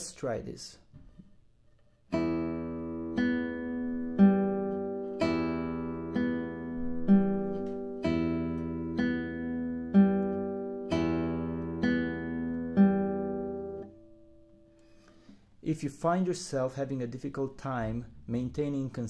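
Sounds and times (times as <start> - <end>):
classical guitar arpeggios: 2.1 - 14.8.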